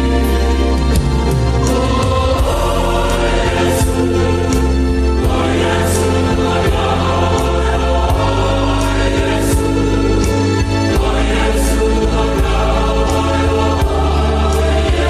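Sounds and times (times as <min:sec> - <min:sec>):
instrumental accompaniment with beat: 0:00.0 - 0:15.0
choir singing a hymn: 0:01.2 - 0:15.0.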